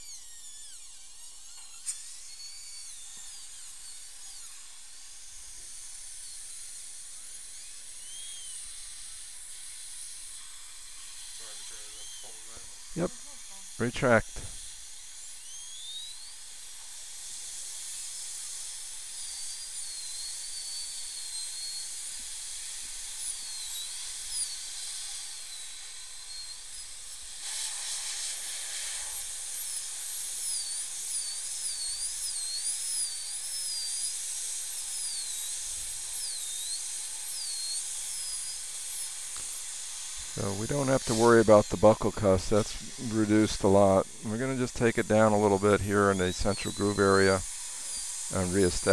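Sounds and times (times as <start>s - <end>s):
dental drill whining: 0.0s - 48.9s
water spray hiss: 27.4s - 30.1s, 37.9s - 48.9s.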